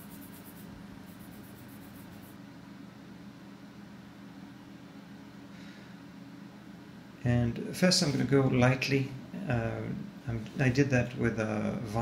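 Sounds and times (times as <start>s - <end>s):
charcoal scratching on paper: 0.0s - 2.3s
steady low hum: 0.0s - 12.0s.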